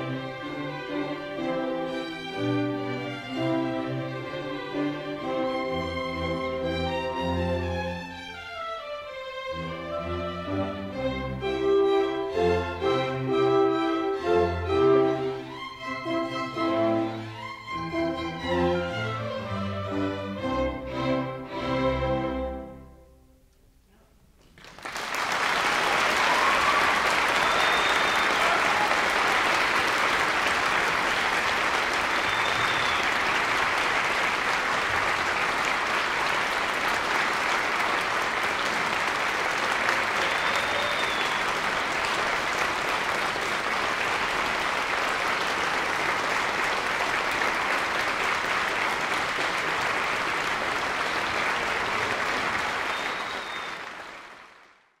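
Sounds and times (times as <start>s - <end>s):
audience applauding: 24.4s - 55.0s.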